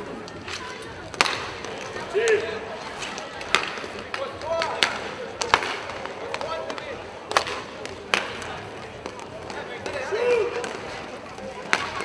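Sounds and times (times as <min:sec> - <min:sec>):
indoor hall hum: 0:00.0 - 0:12.0
hockey sticks clacking on puck: 0:00.2 - 0:12.0.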